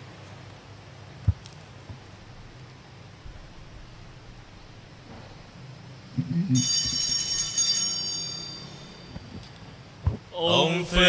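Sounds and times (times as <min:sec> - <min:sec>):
small metal bell ringing: 0:06.6 - 0:09.7.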